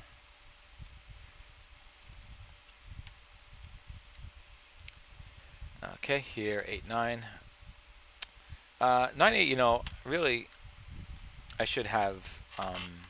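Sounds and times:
faint steady hum: 0.0s - 13.0s
computer mouse clicks: 2.0s - 5.5s.

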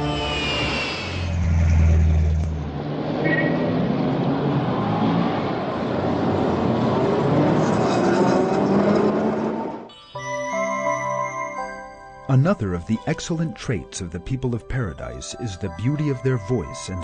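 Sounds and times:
short high tone: 0.0s - 1.6s
road traffic din: 0.0s - 9.7s.

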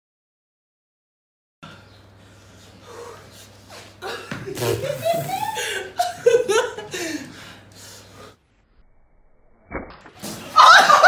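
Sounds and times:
people laughing: 4.0s - 7.4s, 10.4s - 11.0s.

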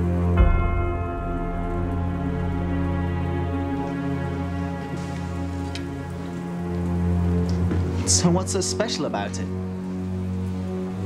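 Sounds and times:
film score of sustained low tones: 0.0s - 11.0s
rain pattering: 0.0s - 11.0s.

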